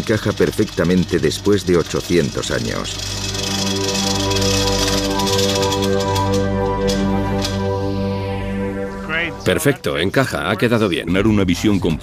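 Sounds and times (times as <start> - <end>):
sustained chord music: 2.7 - 11.5.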